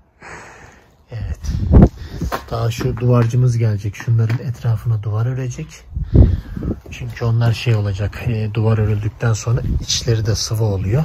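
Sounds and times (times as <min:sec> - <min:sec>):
breathy exhale or sniff: 0:00.1 - 0:00.9
wind buffeting microphone: 0:01.2 - 0:04.9, 0:05.8 - 0:11.0.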